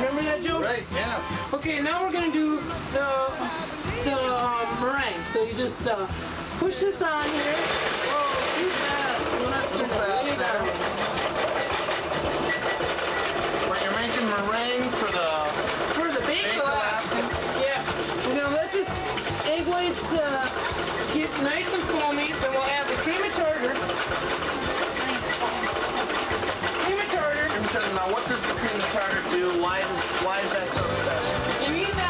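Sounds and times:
stand mixer motor running: 0.0 - 32.0
voices talking: 0.0 - 32.0.

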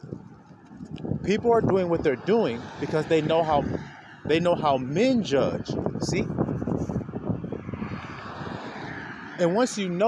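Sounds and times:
wind buffeting microphone: 0.0 - 10.0.

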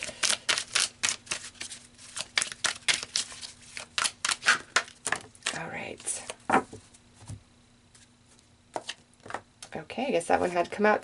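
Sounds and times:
cards being shuffled: 0.0 - 5.6.

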